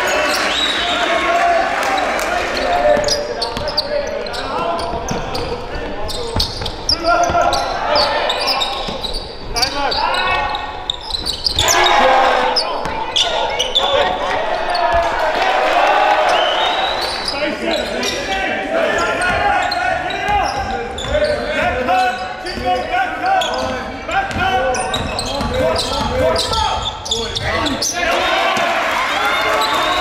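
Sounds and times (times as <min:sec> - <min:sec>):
players shouting: 0:00.0 - 0:30.0.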